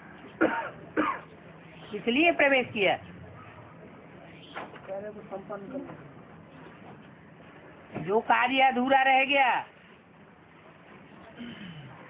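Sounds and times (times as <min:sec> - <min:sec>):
man clearing his throat: 0:11.4 - 0:12.0.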